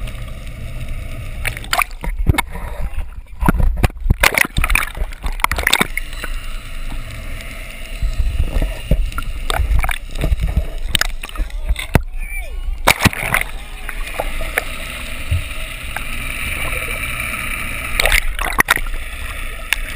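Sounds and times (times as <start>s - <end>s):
low rumble: 0.0s - 19.9s
muffled water sloshing and gurgling: 0.0s - 19.9s.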